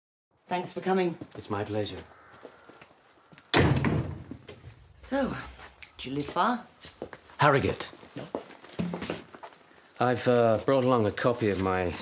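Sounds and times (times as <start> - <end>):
heavy wooden door thudding shut: 3.5 - 4.4.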